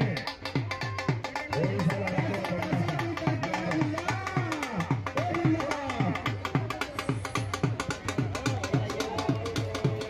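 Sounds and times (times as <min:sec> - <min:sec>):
dhol drum strokes: 0:00.0 - 0:10.0.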